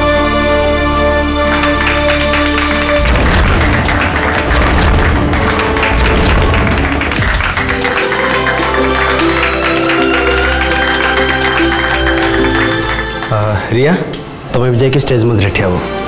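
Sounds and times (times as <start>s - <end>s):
fast percussive beat: 1.5s - 13.6s.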